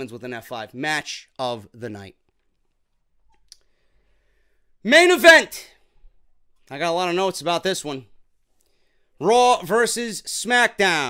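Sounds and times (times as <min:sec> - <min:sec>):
man's voice: 0:04.8 - 0:05.8, 0:06.7 - 0:08.1, 0:09.2 - 0:11.0.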